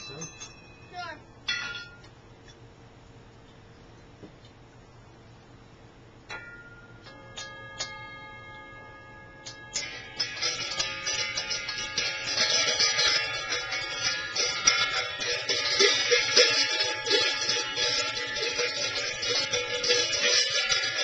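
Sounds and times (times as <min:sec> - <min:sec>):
ringing metal percussion: 0:00.0 - 0:02.1, 0:06.3 - 0:21.0.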